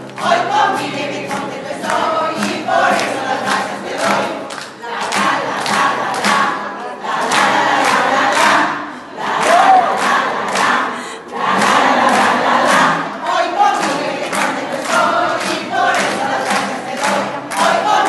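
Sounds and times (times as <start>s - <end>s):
many voices singing together: 0.0s - 18.0s.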